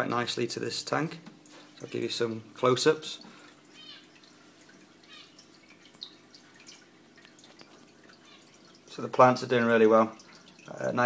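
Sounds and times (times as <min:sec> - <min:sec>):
water trickling and dripping: 0:00.0 - 0:11.0.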